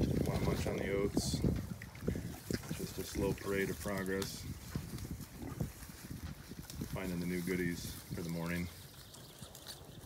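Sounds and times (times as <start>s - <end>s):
piglets crunching and chewing: 0.0s - 10.0s.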